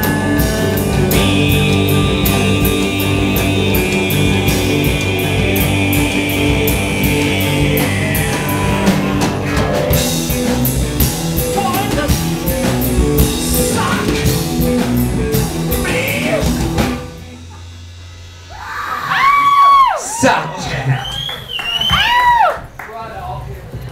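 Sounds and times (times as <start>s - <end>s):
held low note: 0.0s - 10.8s
live rock band playing: 0.0s - 20.8s
singer shouting: 18.5s - 21.1s.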